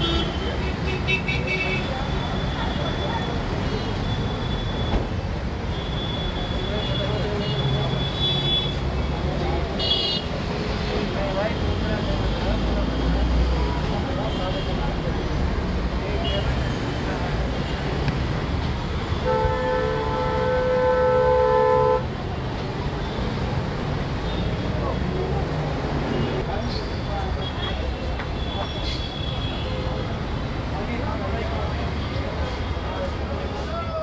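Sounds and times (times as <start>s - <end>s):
road traffic: 0.0s - 34.0s
vehicle horn blast: 19.2s - 22.0s.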